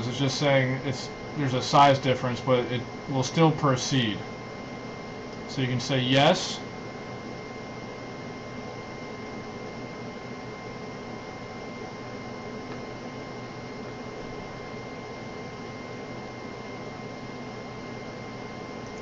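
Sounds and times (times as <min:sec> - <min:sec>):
constant high whine: 0:00.0 - 0:19.0.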